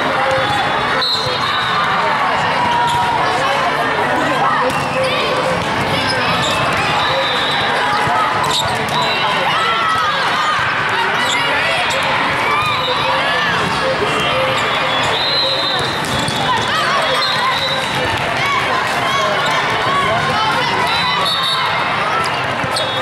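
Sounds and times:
din of many voices: 0:00.0 - 0:23.0
volleyballs hit and bouncing: 0:04.6 - 0:21.0.

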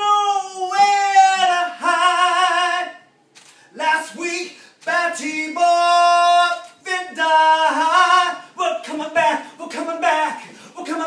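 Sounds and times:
man singing: 0:00.0 - 0:03.1, 0:03.7 - 0:11.0.

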